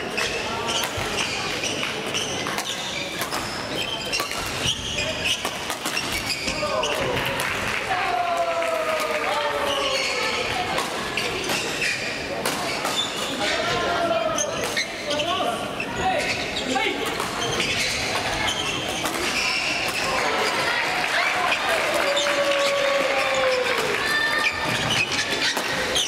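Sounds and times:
voices of players: 0:00.0 - 0:26.0
sneakers squeaking on court: 0:00.1 - 0:07.1, 0:09.7 - 0:13.4, 0:14.3 - 0:20.8, 0:24.3 - 0:26.0.

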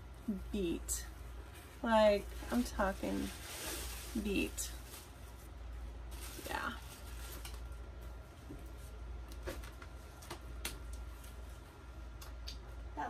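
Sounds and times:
low steady hum: 0:00.0 - 0:13.0
faint rustling: 0:01.1 - 0:10.0.

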